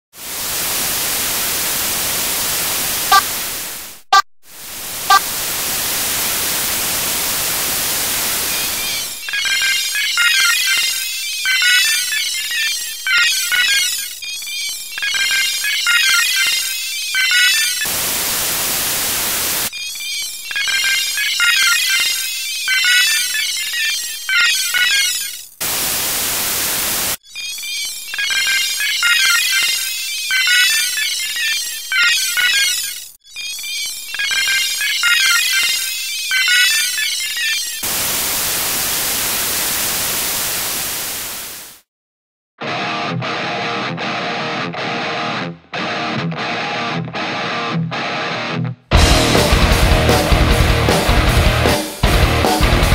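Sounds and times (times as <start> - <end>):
static hiss: 0.2 - 11.0, 17.8 - 19.7, 25.6 - 27.2, 37.8 - 41.9
high electronic beeping and chirping: 8.2 - 26.2, 27.2 - 38.2.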